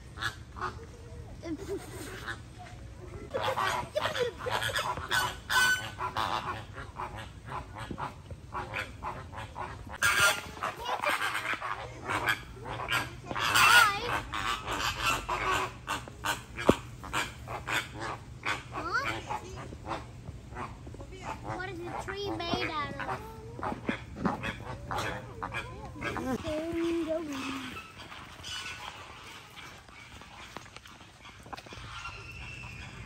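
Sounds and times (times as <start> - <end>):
flamingos honking: 0.0 - 33.0.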